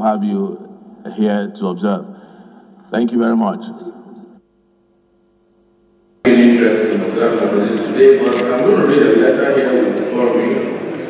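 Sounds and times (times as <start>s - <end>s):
man speaking: 0.0s - 2.2s, 2.9s - 4.1s, 6.3s - 11.0s
faint steady hum: 0.0s - 11.0s.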